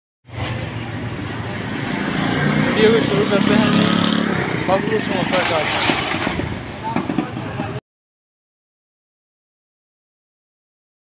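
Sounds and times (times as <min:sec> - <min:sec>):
street traffic noise: 0:00.2 - 0:07.8.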